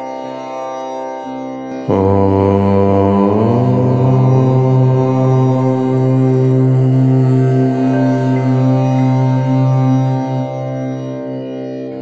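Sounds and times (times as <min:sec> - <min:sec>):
background music: 0:01.2 - 0:12.0
low voice chanting om: 0:01.8 - 0:12.0.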